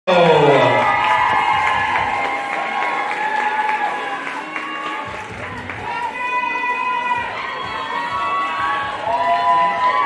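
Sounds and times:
audience cheering and clapping: 0.2s - 10.0s.

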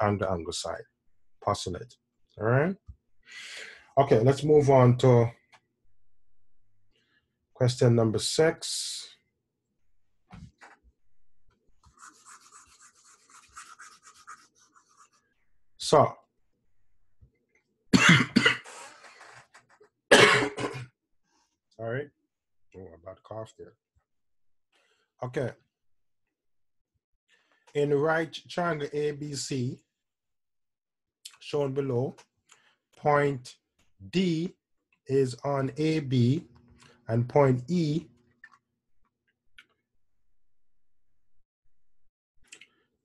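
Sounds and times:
person coughing: 18.0s - 19.0s, 20.1s - 20.9s.

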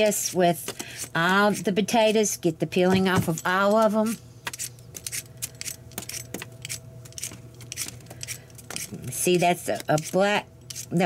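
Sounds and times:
potato peeler scraping potato: 0.0s - 2.8s, 3.8s - 11.0s.

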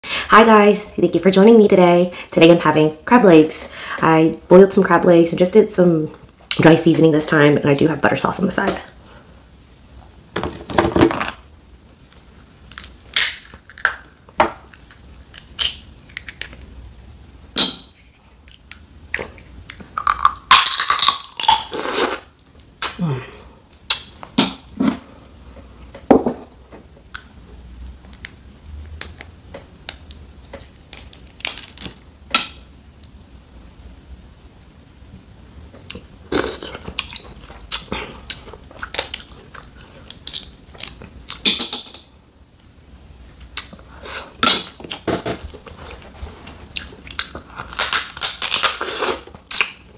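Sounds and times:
crab shells cracking by hand: 12.7s - 14.1s, 14.7s - 16.7s, 29.9s - 33.1s, 47.1s - 48.8s.

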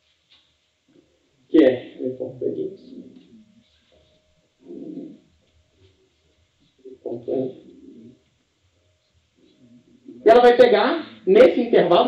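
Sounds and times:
man murmuring through mask: 4.6s - 5.2s, 6.9s - 8.1s.

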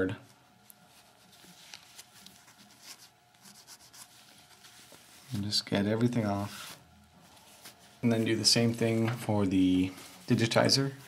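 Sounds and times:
soft scrapes and handling: 0.5s - 5.6s, 6.2s - 11.0s
cloth rubbing on screen: 0.5s - 5.7s, 6.3s - 9.0s, 9.7s - 11.0s.

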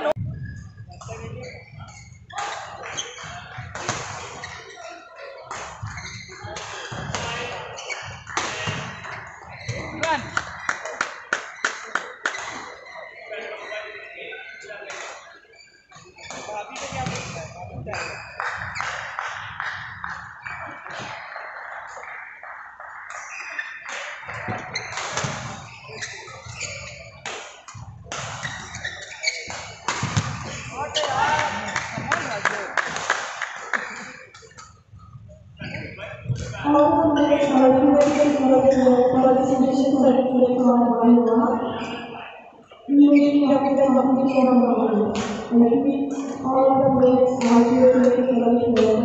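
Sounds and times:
shoes squeaking on court: 5.8s - 13.1s, 19.9s - 32.1s, 35.6s - 40.1s.

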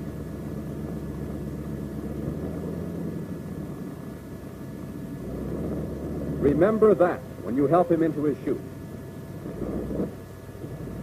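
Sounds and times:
aircraft engine idling: 0.0s - 11.0s.

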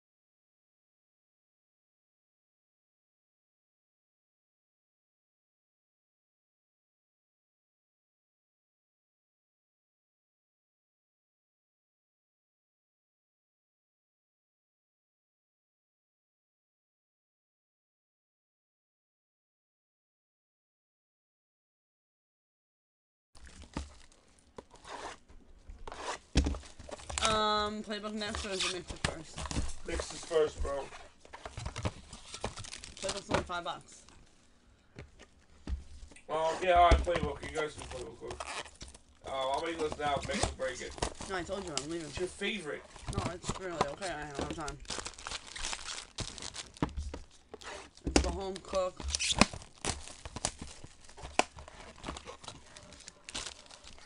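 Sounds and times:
plastic wrapping tearing and crinkling: 23.4s - 25.2s, 28.1s - 33.6s, 36.6s - 54.0s
cardboard box handling: 39.6s - 54.0s.

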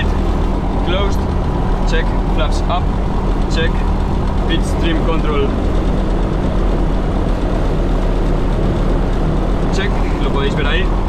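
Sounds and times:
light aircraft engine idling: 0.0s - 11.0s.

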